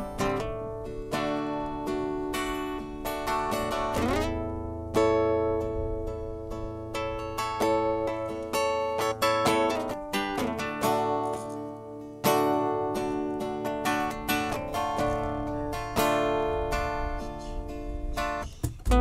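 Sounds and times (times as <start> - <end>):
acoustic guitar picking melody: 0.0 - 19.0
strummed guitar chords: 0.0 - 19.0.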